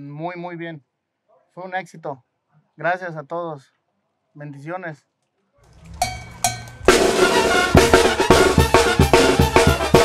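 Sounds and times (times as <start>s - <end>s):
ringing metallic percussion strikes: 6.0s - 8.1s
band drums and music: 6.1s - 10.0s.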